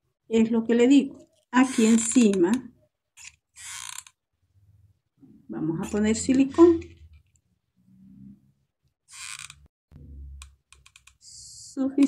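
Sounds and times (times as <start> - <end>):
glue gun trigger creak: 3.2 - 4.2, 9.1 - 9.6.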